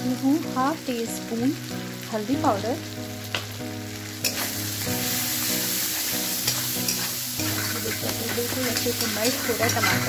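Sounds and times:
food sizzling in hot oil: 0.0 - 10.0
metal spatula scraping pan: 4.2 - 10.0.

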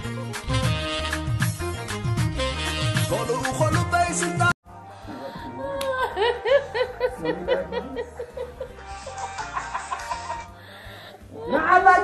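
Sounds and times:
woman laughing: 5.2 - 10.5.

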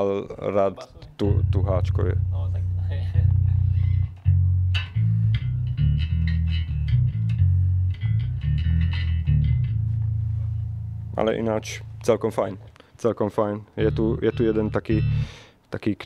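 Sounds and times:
electric bass with octave-down tone: 1.1 - 12.8, 13.7 - 15.5.

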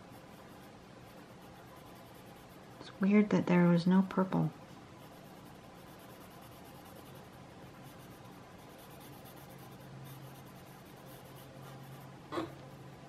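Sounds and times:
pencil scratching on paper: 0.0 - 3.2, 5.0 - 13.0
low steady hum: 0.0 - 13.0.

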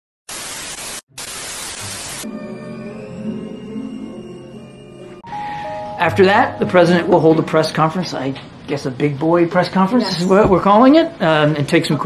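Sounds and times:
television static hiss: 0.3 - 2.2.

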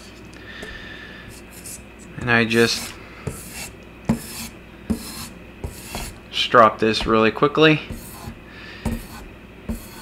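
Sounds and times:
strop rubbed along blade: 2.5 - 6.2, 7.9 - 10.0.

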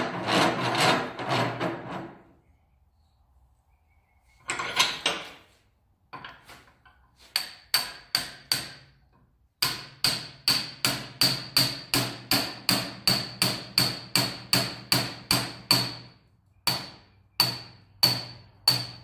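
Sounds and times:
hammer tapping metal punch: 7.3 - 8.9, 9.6 - 19.0.

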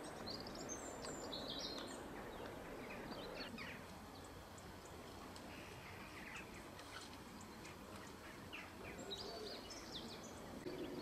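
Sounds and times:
outdoor background noise: 0.0 - 11.0
small birds chirping: 0.0 - 11.0.

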